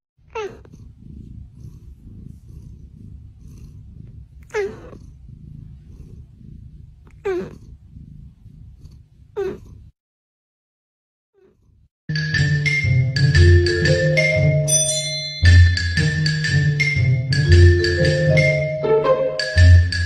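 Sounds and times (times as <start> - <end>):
cat purring: 0.2 - 10.0
cat crying: 0.3 - 0.7.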